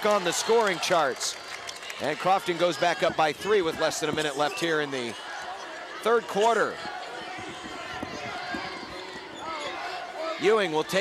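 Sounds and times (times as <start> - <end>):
crowd murmur: 0.0 - 11.0
players running on wooden court: 0.0 - 11.0
basketball dribbling thuds: 6.7 - 9.7.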